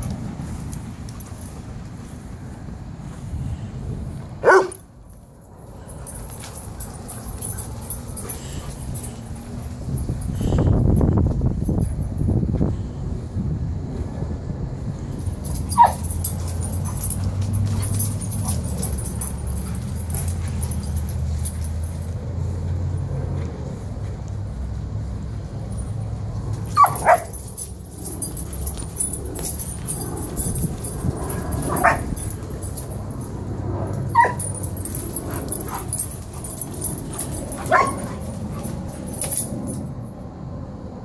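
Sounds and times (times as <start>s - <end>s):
dog yelp: 15.6s - 17.1s, 26.7s - 27.4s, 31.2s - 32.3s, 34.1s - 34.6s, 35.2s - 38.7s.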